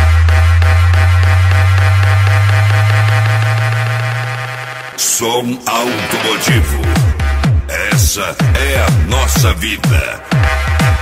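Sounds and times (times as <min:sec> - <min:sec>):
deep sub-bass tone: 0:00.0 - 0:05.0, 0:06.5 - 0:11.0.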